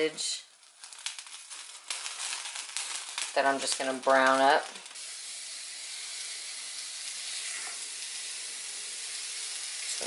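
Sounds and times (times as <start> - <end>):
sausage sizzling in a skillet: 0.0 - 10.0.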